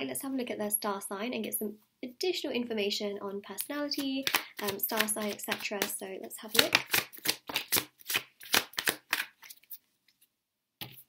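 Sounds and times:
cards being shuffled by hand: 3.6s - 10.2s.

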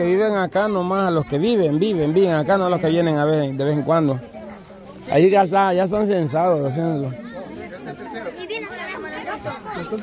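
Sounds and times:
chatter of voices: 0.0s - 10.0s.

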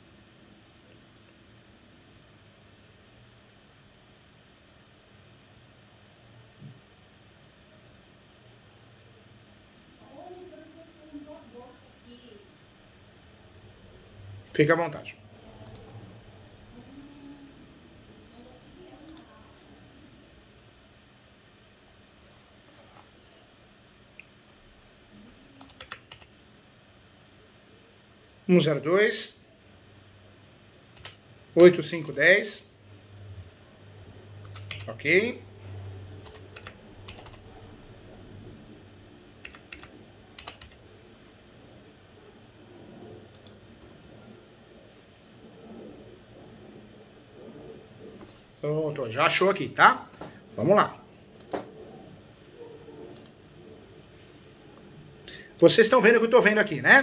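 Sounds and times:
low room hum: 0.0s - 57.0s
computer keyboard keystrokes: 15.6s - 15.9s, 25.4s - 26.3s, 31.0s - 31.2s, 34.4s - 34.9s, 36.2s - 37.7s, 39.4s - 40.8s, 43.3s - 43.6s.

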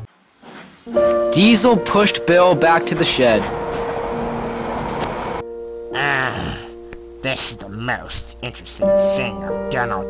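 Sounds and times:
background music: 0.9s - 10.0s
train running: 2.5s - 5.4s.

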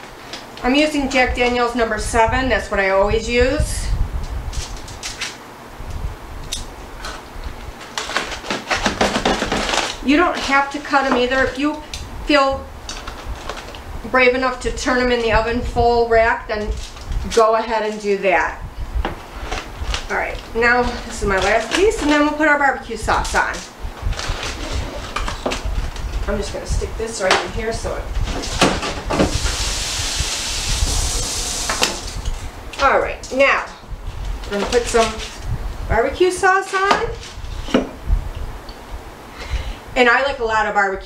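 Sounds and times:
aluminium foil crinkling: 7.8s - 12.0s, 12.8s - 15.4s, 16.4s - 18.2s, 19.3s - 26.3s, 34.2s - 35.5s.

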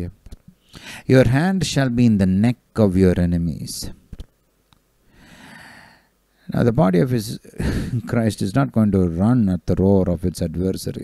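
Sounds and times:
man breathing in: 0.6s - 1.1s, 5.1s - 6.2s.

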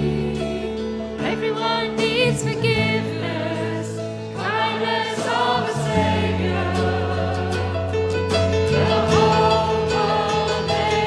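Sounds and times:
bass guitar: 0.0s - 11.0s
group singing: 0.0s - 11.0s
keyboard: 0.0s - 11.0s.

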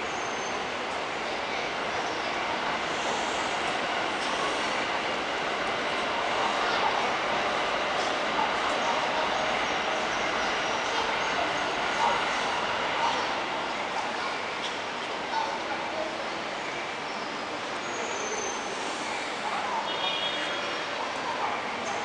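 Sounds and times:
distant voices: 0.0s - 22.0s.

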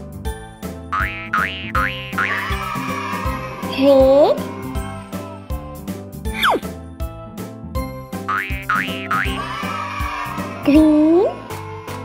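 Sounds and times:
upbeat children's music: 0.0s - 12.0s
cartoon boing spring effect: 1.0s - 2.4s, 8.3s - 9.3s.

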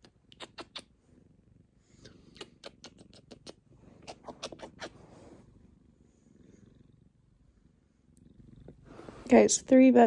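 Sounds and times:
cat purring: 0.0s - 10.0s.

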